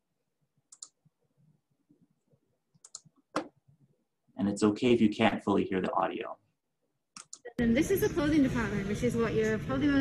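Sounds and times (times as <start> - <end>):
computer control clicks: 7.2 - 7.6.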